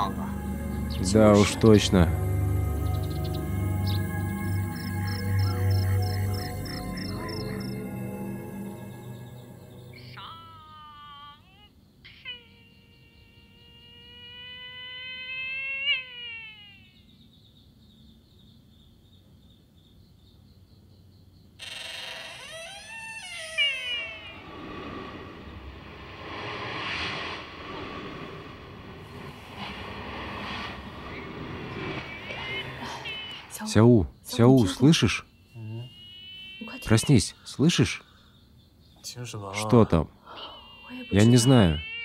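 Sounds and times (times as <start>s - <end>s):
animal-like wailing cry: 12.1s - 17.0s, 21.7s - 25.2s, 40.3s - 42.0s
faint high whine: 22.4s - 38.2s
low rumbling rush: 24.2s - 33.6s.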